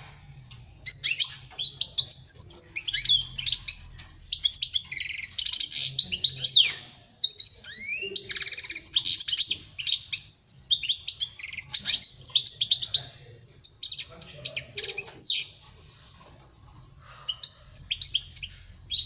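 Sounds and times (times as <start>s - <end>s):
goldfinch twittering song: 0.8s - 13.0s.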